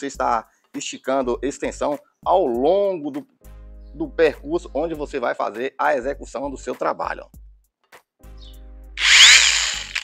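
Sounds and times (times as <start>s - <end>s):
angle grinder whine: 9.0s - 10.0s.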